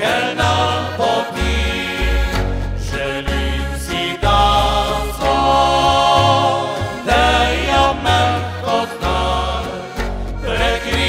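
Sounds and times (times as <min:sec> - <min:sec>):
acoustic rhythm guitar: 0:00.0 - 0:11.0
button accordion: 0:00.0 - 0:11.0
male vocal group singing: 0:00.0 - 0:11.0
plucked double bass: 0:00.0 - 0:11.0.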